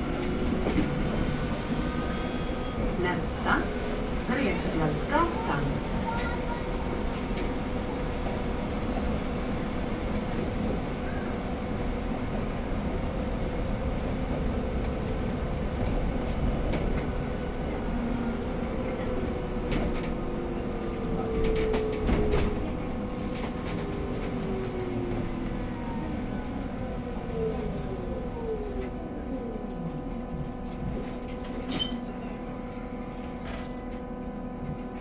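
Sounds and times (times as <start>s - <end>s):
bus cabin rumble: 0.0s - 35.0s.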